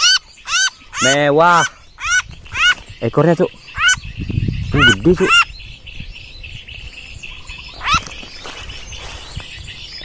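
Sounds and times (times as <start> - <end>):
bird harsh rising squawks: 0.0 - 2.8, 3.7 - 4.0, 4.7 - 5.5, 7.7 - 8.2
faint rapid bird chirping: 0.0 - 10.0.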